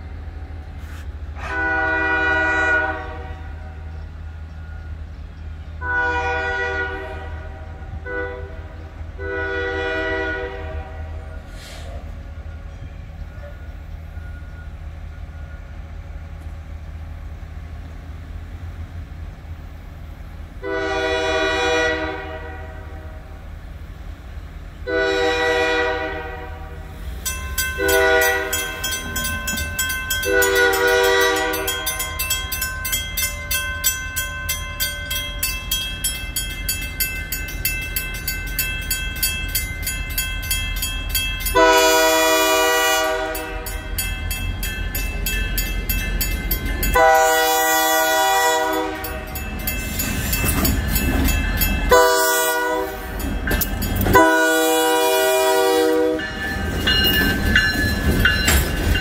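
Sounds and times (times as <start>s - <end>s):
locomotive air horn blasts: 1.4s - 3.8s, 5.8s - 11.9s, 20.6s - 23.3s, 24.8s - 27.0s, 27.8s - 28.7s, 30.2s - 32.0s, 41.6s - 43.9s, 47.0s - 49.3s, 51.9s - 53.1s, 54.1s - 56.4s
train wheels clicking over rail joints: 27.0s - 54.7s, 56.1s - 59.0s
railroad crossing bell ringing: 27.0s - 59.0s.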